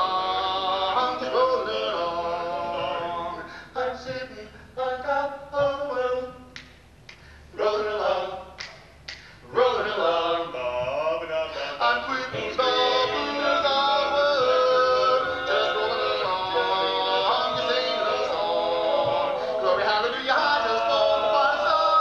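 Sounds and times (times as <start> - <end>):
men singing a cappella harmony: 0.0 - 6.5, 7.5 - 8.8, 9.4 - 22.0.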